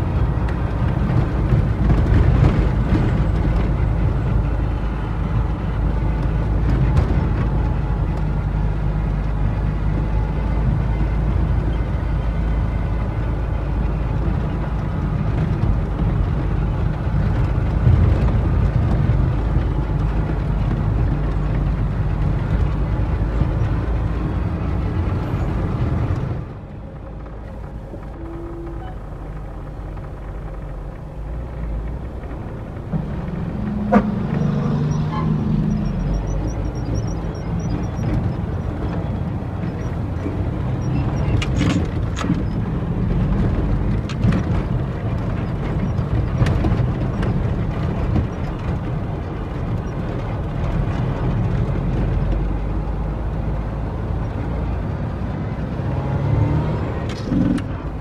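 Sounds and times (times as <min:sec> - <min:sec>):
truck engine and road rumble: 0:00.0 - 0:58.0.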